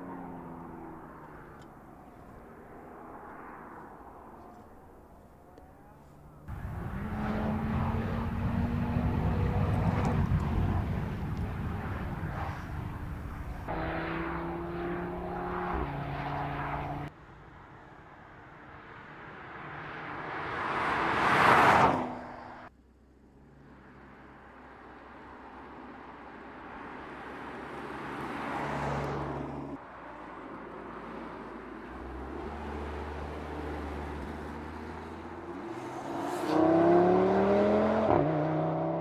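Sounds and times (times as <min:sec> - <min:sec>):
car passing by: 0:00.0 - 0:17.1, 0:18.8 - 0:22.7, 0:26.6 - 0:39.0
car engine revving: 0:05.4 - 0:17.1, 0:31.9 - 0:39.0.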